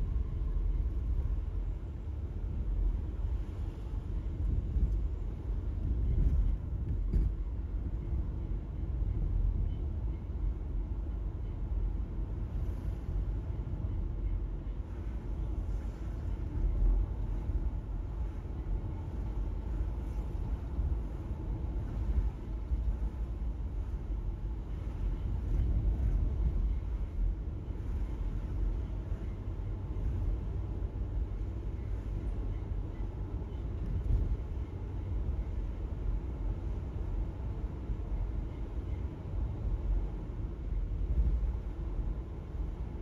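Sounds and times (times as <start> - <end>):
car interior road rumble: 0.0 - 43.0.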